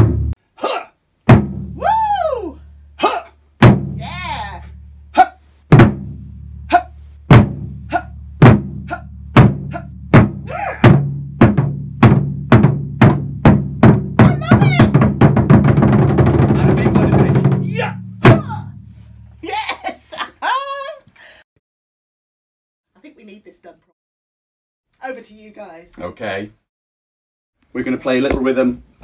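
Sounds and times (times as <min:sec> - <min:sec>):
drums struck with sticks: 0:00.0 - 0:00.4, 0:01.3 - 0:01.9, 0:03.6 - 0:04.2, 0:05.7 - 0:06.3, 0:07.3 - 0:07.8, 0:08.4 - 0:19.0
fast drum roll: 0:01.3 - 0:01.9, 0:05.7 - 0:06.2, 0:08.4 - 0:18.8.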